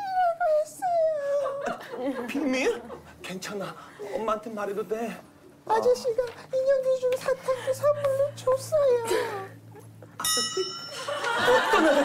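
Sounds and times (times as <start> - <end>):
bright bell-like chime: 10.2 - 11.3.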